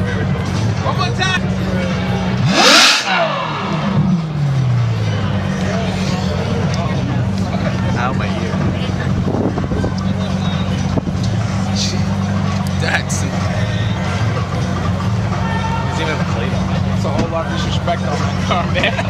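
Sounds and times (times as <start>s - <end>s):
car engine idling and revving: 0.0s - 19.0s.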